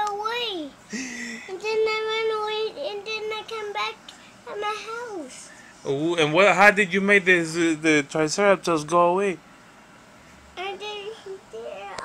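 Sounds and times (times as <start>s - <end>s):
child wordless vocal sounds: 0.0s - 5.6s, 10.6s - 12.0s.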